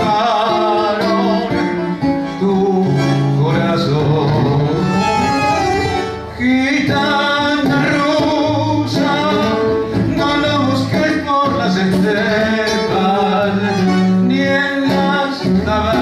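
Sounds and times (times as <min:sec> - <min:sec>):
acoustic guitar: 0:00.0 - 0:16.0
man singing into a microphone: 0:00.0 - 0:16.0.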